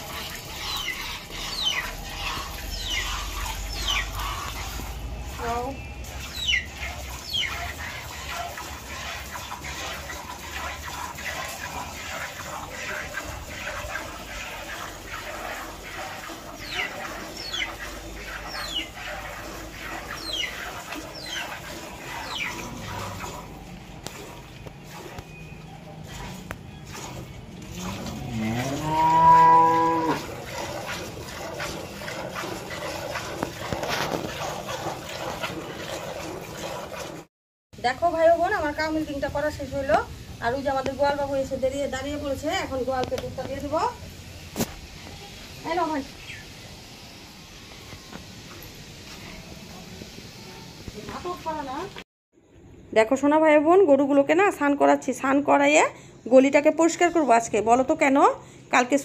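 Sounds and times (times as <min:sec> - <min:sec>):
milk squirting into steel bucket: 0:26.0 - 0:28.3, 0:30.1 - 0:37.2
cow mooing: 0:27.7 - 0:30.3.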